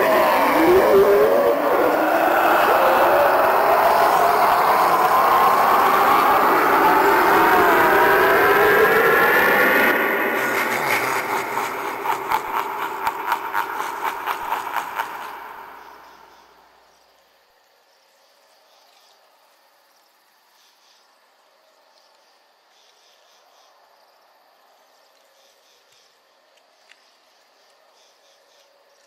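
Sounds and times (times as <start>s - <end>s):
animatronic sound effect roar: 0.0s - 16.5s.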